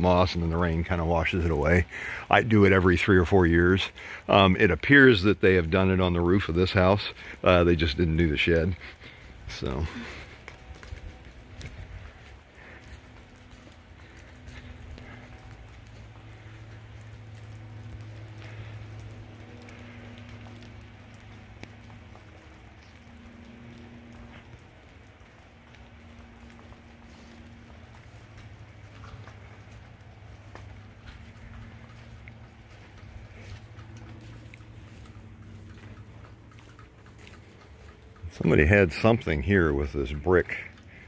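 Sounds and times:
low hum: 0.0s - 41.0s
rain falling steadily: 0.0s - 41.0s
ticks of raindrops: 0.0s - 41.0s.

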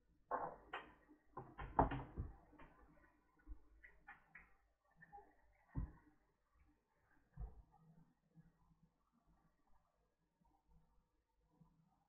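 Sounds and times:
knocks and clicks on a workbench: 0.3s - 2.3s.

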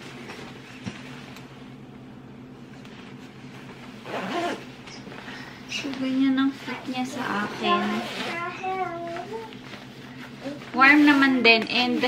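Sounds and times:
low electrical hum: 0.0s - 12.0s
jacket fabric rustling: 2.6s - 12.0s.

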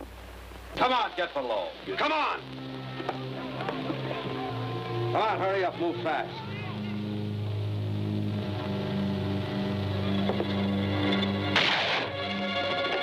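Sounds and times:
dramatic orchestral music: 8.4s - 13.0s
short crash: 11.5s - 12.2s.

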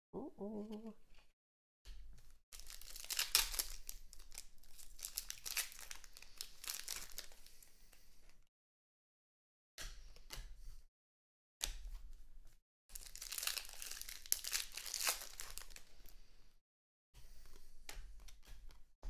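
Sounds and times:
foil wrapper tearing and crinkling: 2.6s - 7.5s, 12.9s - 15.9s.

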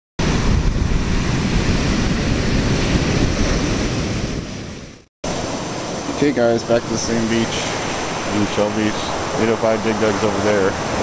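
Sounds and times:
surf breaking on beach: 0.2s - 11.0s
wind buffeting microphone: 0.2s - 11.0s.

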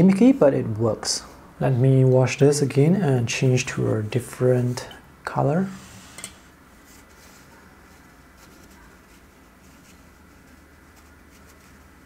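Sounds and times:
low room noise: 0.0s - 12.0s
paper tissue rustling: 6.7s - 12.0s.

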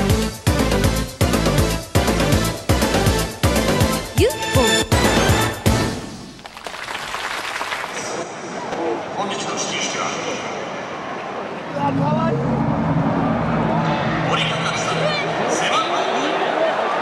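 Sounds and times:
stadium crowd noise: 6.5s - 17.0s.

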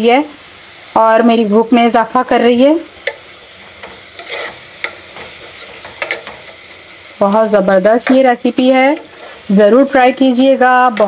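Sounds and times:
beans sizzling in a pot: 0.0s - 11.0s
metal spoon scraping a pan: 3.0s - 6.8s, 7.9s - 9.6s.

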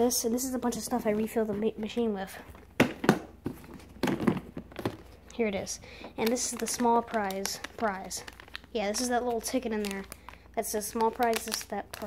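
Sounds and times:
knocks and rustling of plastic bin: 2.8s - 5.1s.

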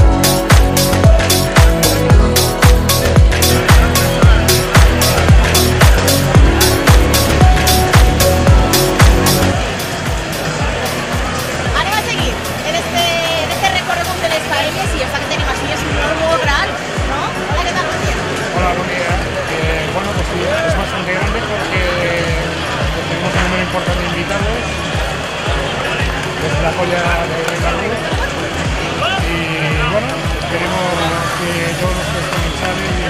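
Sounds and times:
music with steady beat: 0.0s - 30.7s
crowd chatter: 0.0s - 33.0s.

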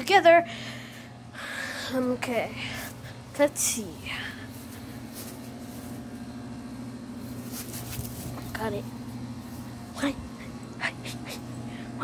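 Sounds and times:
machine humming: 0.4s - 12.0s
plush toy rustling on grass: 3.8s - 10.3s.

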